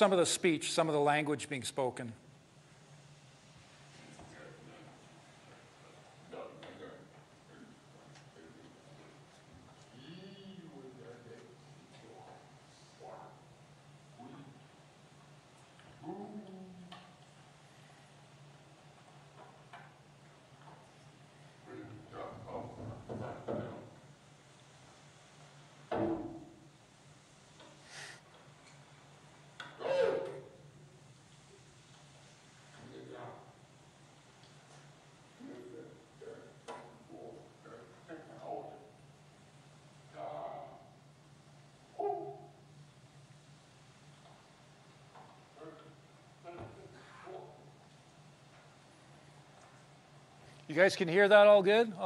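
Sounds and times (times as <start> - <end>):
steady low hum: 0.0 - 52.0
faint vocal sounds: 9.9 - 11.0, 16.0 - 17.1
loud hooting call: 29.8 - 30.5.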